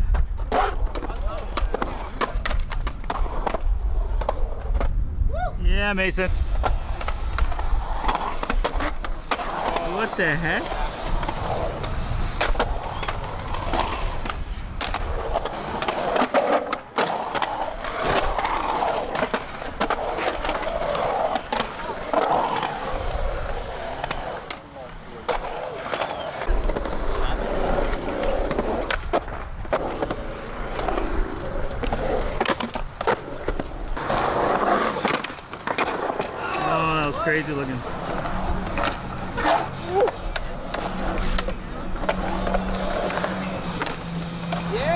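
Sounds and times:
skateboard wheels rolling on concrete: 0:00.0 - 0:44.9.

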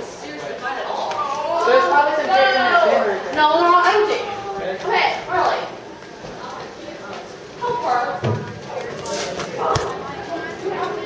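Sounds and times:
people talking in a hall: 0:00.0 - 0:11.0.

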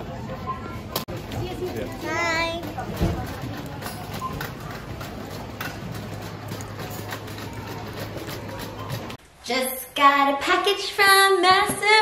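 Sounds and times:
murmur of shoppers: 0:00.0 - 0:09.2
shopping trolley rattling: 0:01.1 - 0:09.2.

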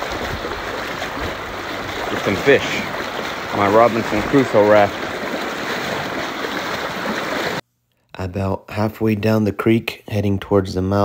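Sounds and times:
creek water rushing: 0:00.0 - 0:07.6.

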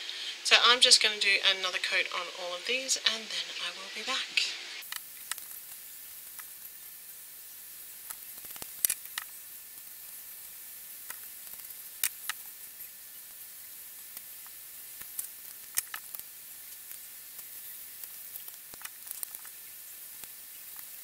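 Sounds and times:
background hiss: 0:00.0 - 0:21.0.

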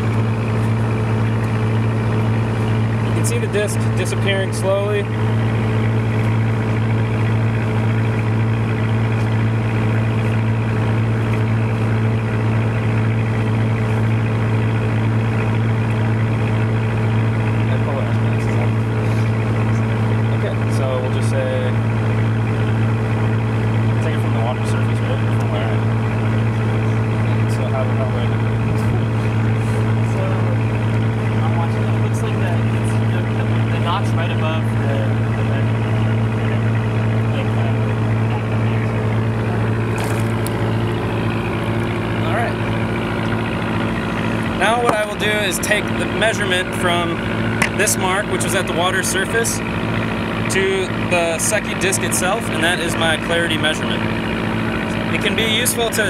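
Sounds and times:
boat engine humming: 0:00.0 - 0:56.0.

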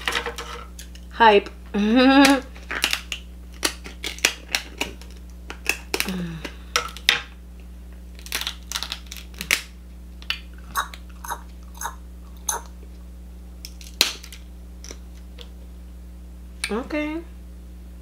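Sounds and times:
crab shell cracking: 0:02.3 - 0:07.1, 0:08.1 - 0:11.2, 0:13.6 - 0:15.5.

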